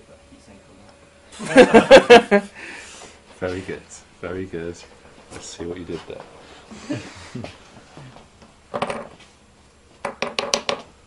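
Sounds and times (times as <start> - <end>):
person laughing: 1.4 - 2.6, 6.7 - 7.6.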